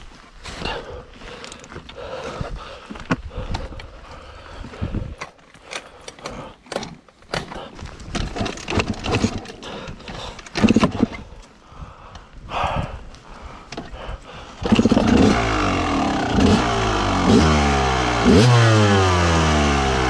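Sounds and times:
metal parts clicking and knocking: 5.7s - 11.2s
loud rough burst: 14.6s - 20.0s.

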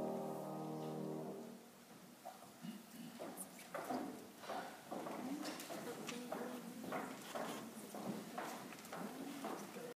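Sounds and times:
hard shoes on stage floor: 2.2s - 9.9s
faint murmuring voices: 2.6s - 9.9s.

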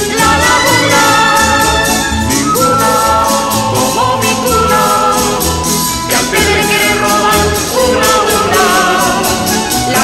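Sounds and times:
voices singing together: 0.0s - 10.0s.

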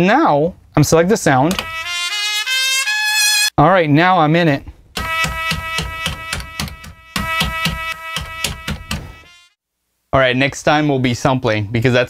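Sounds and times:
stuttering sampled horn stab: 1.6s - 3.5s, 5.0s - 9.6s.

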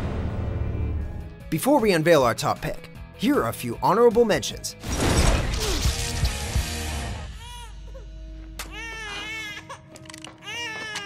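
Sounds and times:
baby crying: 7.3s - 11.0s.

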